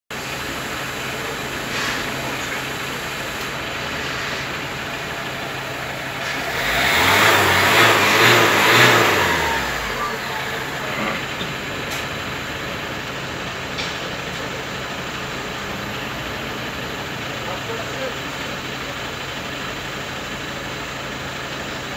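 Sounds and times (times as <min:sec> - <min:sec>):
van engine idling and revving: 0:00.1 - 0:21.9.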